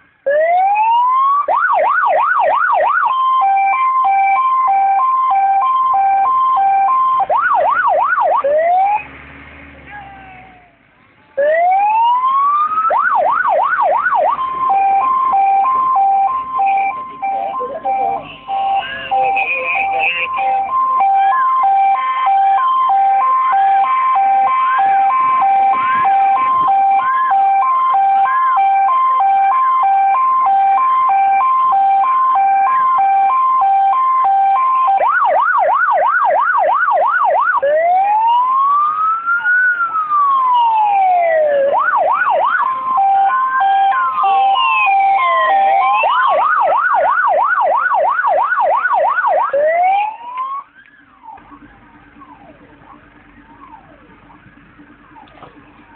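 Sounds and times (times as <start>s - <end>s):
fire engine sirens: 0.0s - 55.9s.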